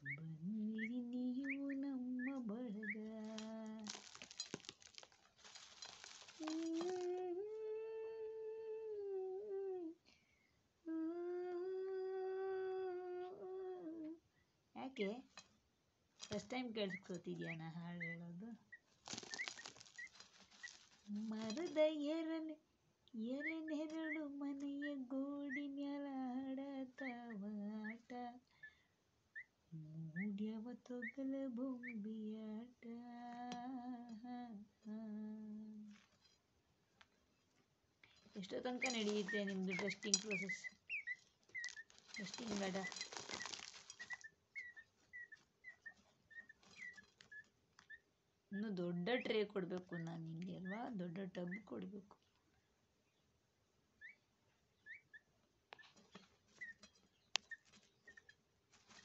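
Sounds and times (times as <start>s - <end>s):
chick peeping: 0.0s - 4.4s, 5.8s - 7.2s, 16.4s - 21.9s, 23.2s - 26.1s, 26.8s - 28.7s, 29.3s - 32.5s, 38.3s - 52.0s, 54.0s - 58.2s
faint high chirps: 0.0s - 7.3s, 16.3s - 21.8s, 38.0s - 51.7s
soil scattering: 2.2s - 7.3s, 15.0s - 18.2s, 18.8s - 22.2s, 38.0s - 47.4s, 56.0s - 59.0s
wing-flapping and rustling: 2.8s - 7.3s, 18.8s - 21.9s, 38.2s - 47.5s, 55.8s - 59.0s.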